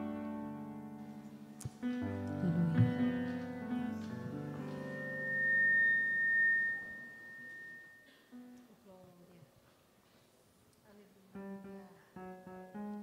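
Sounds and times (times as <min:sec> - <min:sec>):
keyboard and guitar chords: 0:00.0 - 0:08.0
high steady tone: 0:02.3 - 0:08.4.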